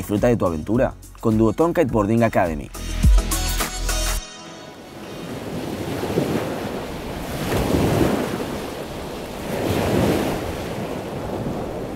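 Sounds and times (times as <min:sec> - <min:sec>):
sea waves washing: 0:04.4 - 0:11.9
wind on microphone: 0:05.0 - 0:11.9.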